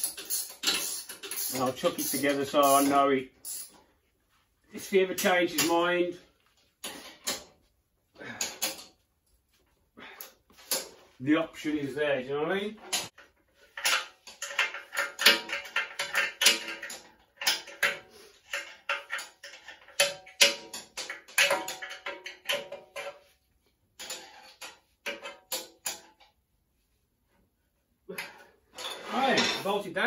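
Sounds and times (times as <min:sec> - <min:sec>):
hand tools clicking on metal bolts: 0:00.0 - 0:03.8, 0:08.3 - 0:09.0, 0:12.9 - 0:23.2, 0:24.0 - 0:26.3.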